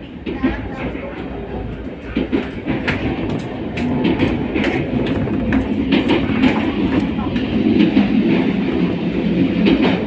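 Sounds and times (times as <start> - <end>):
train rumbling on rails: 0.0 - 10.0
wheels clicking over rail joints: 0.0 - 10.0.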